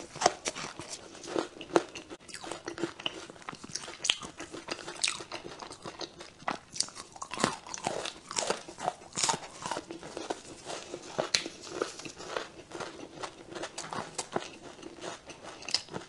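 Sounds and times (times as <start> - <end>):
chewing crunchy chocolate: 0.0 - 16.0.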